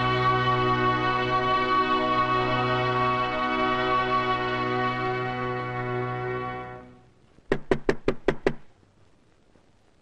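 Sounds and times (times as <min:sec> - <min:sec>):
knocking on a wooden door: 0:07.5 - 0:08.7.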